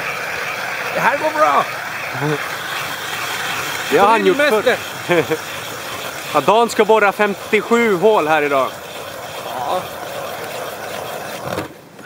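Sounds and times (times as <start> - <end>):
ice auger scraping through ice: 1.0 - 11.7.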